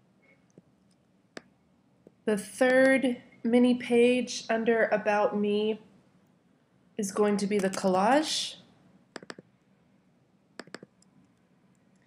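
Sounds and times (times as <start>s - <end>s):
computer mouse clicking: 7.6s - 7.9s, 9.1s - 9.5s, 10.6s - 12.0s.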